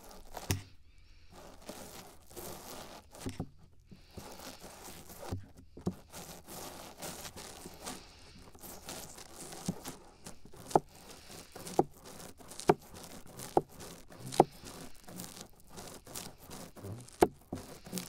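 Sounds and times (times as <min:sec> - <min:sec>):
brush scratching on microphone: 0:00.0 - 0:18.0
bumps against microphone: 0:16.4 - 0:18.0.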